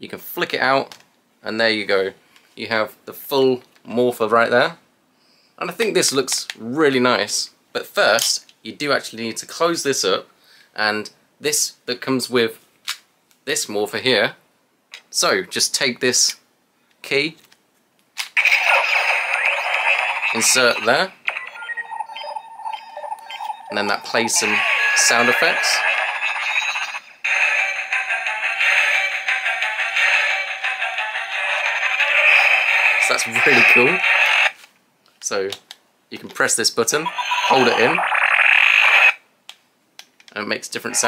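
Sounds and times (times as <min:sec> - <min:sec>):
electronic toy sound effect: 0:18.4 - 0:34.5, 0:37.0 - 0:39.2.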